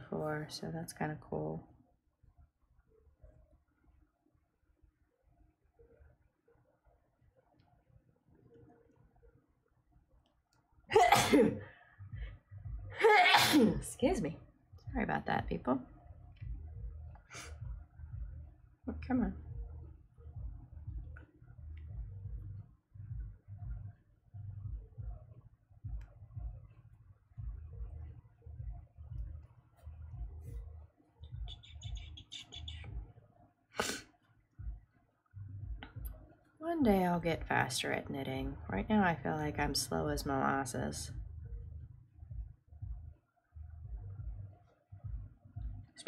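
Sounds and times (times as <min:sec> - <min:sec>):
woman sneezing: 0:10.9 - 0:11.6, 0:13.0 - 0:13.8.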